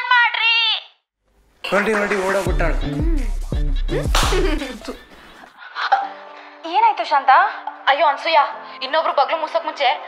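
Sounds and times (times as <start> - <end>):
film score with deep bass: 2.5 - 4.9
whip-crack hits: 4.2 - 4.5.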